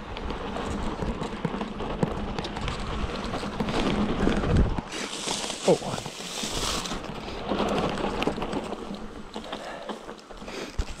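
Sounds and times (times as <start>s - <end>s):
bike rattles and clicks: 0.0s - 11.0s
bike tyres rushing on dirt: 0.0s - 11.0s.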